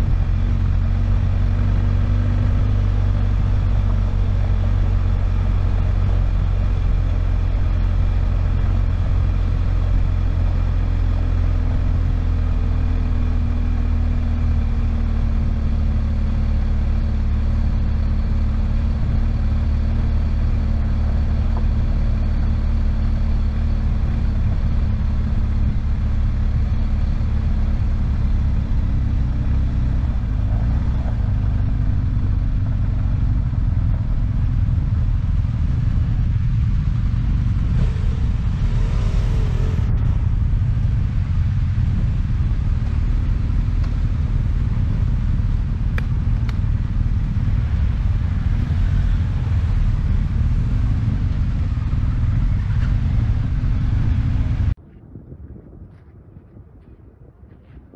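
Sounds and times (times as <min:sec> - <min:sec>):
motorcycle engine running: 0:00.0 - 0:54.8
wind rumble on microphone: 0:00.0 - 0:57.9.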